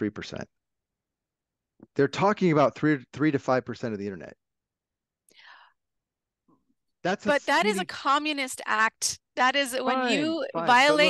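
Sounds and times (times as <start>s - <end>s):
faint breathy sound of person: 5.3s - 5.8s.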